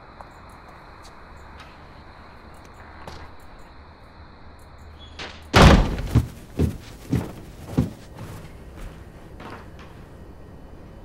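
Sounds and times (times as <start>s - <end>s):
door banging shut: 5.2s - 6.7s.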